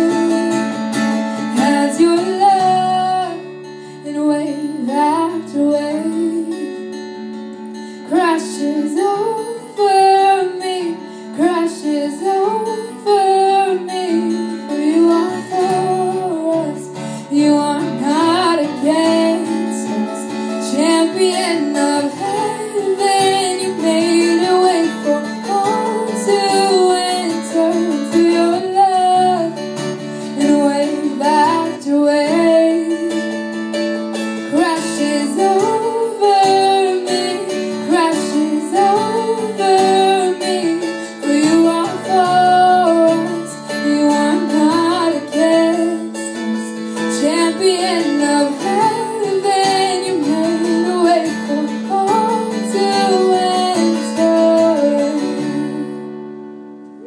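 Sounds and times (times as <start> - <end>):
woman singing worship song: 0.0 - 0.7, 1.5 - 6.7, 8.1 - 29.6, 30.4 - 33.2, 34.5 - 56.1
strummed acoustic guitar: 0.0 - 57.0.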